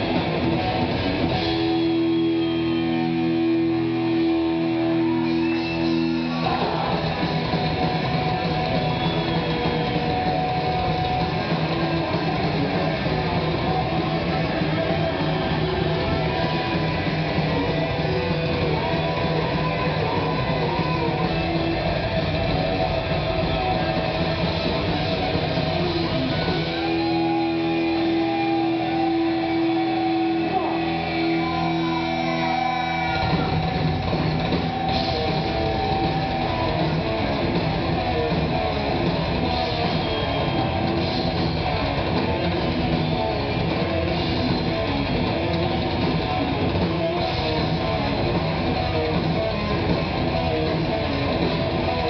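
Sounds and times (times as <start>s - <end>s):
distorted electric guitars: 0.0s - 52.0s
drums: 0.0s - 52.0s
metal band playing: 0.0s - 52.0s.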